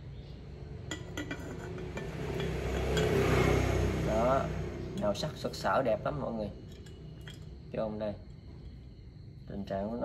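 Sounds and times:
ceramic lid clinking on pot: 0.9 - 3.2.

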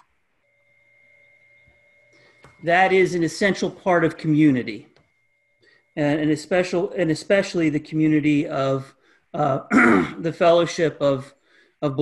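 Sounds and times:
faint steady tone: 0.0 - 12.0.

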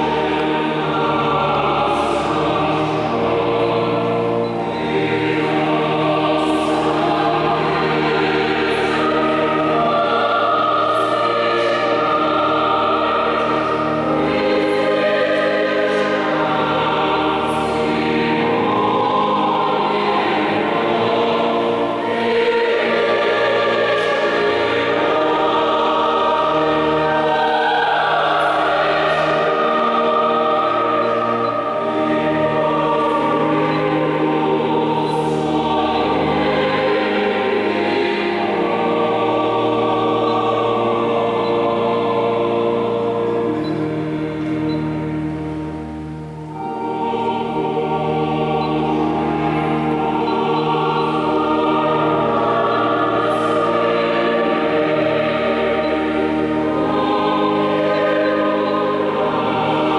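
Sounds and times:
choir singing unaccompanied: 0.0 - 59.9.

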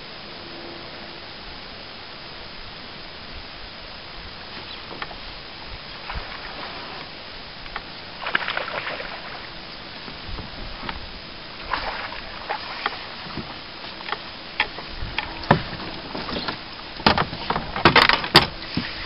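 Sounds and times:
fish splashing: 5.8 - 10.2, 11.4 - 17.0
knocks against boat: 14.6 - 19.0.

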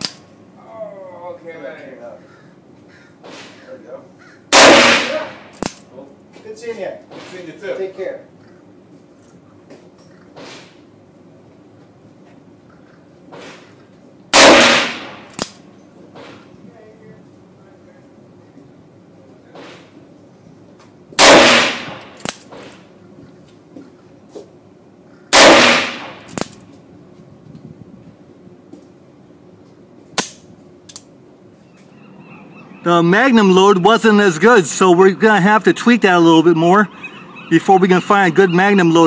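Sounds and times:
sharp cracks and clicks: 0.0 - 0.2, 4.7 - 5.9, 14.4 - 15.6, 21.2 - 22.8, 25.4 - 26.7, 30.2 - 31.1
revolver shots with echo: 4.5 - 5.5, 14.4 - 15.3, 25.4 - 26.4.

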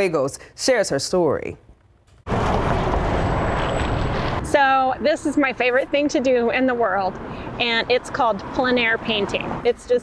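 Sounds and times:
large vehicle passing: 2.3 - 9.7.

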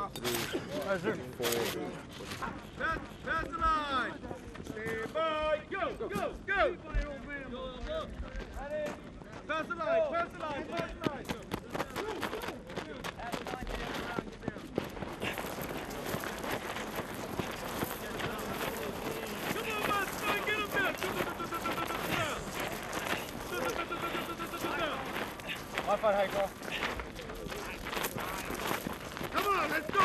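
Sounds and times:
gravel crunching and scraping: 7.2 - 30.0
people laughing and shouting: 15.2 - 30.0
long held call: 17.8 - 25.8.

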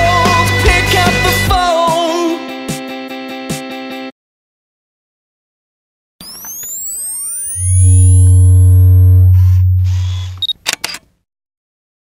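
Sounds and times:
rising electronic whine sweeps: 6.2 - 10.5
short high beep: 6.2 - 10.6
deep steady hum: 7.6 - 10.5
camera shutter clicks: 10.0 - 11.1.

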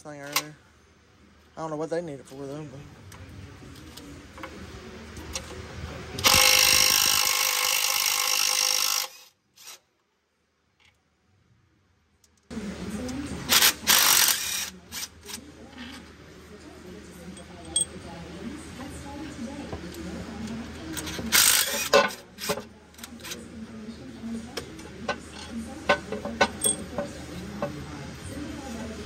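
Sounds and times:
power tool spinning out bolts: 6.2 - 9.8, 13.5 - 15.1, 21.0 - 22.6.

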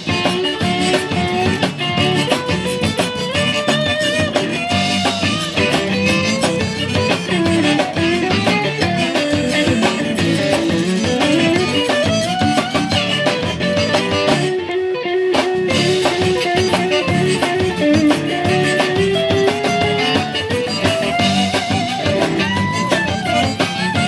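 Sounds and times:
accordion: 0.0 - 24.0
drum kit: 0.0 - 24.0
electric bass: 0.0 - 24.0
saxophone: 0.0 - 24.0.

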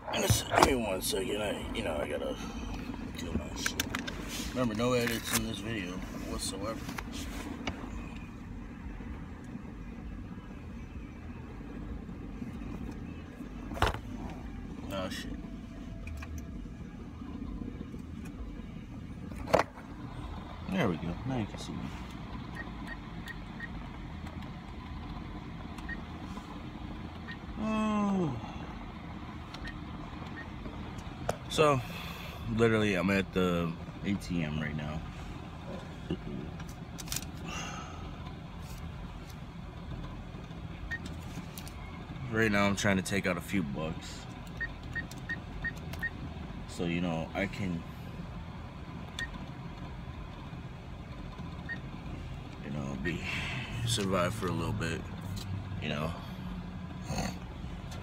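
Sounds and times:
car idling from inside cabin: 0.0 - 58.0.

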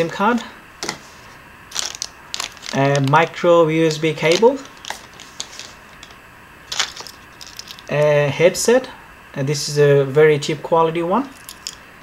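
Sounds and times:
crisp packaging rustle: 1.7 - 8.0.

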